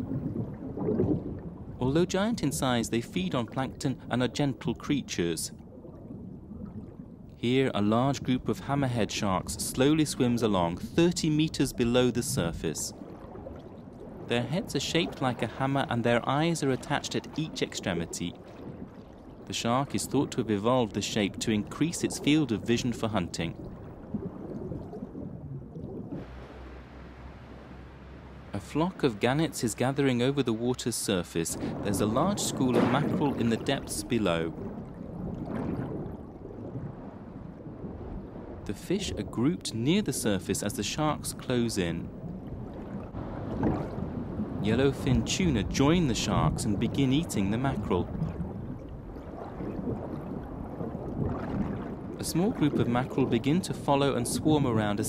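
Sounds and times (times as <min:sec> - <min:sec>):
underwater rushing water: 0:00.0 - 0:55.0
wind and open sea hiss: 0:01.6 - 0:05.5, 0:07.3 - 0:13.4, 0:14.0 - 0:18.5, 0:19.3 - 0:23.6, 0:26.1 - 0:34.7, 0:37.2 - 0:55.0
low rumble: 0:23.4 - 0:39.2.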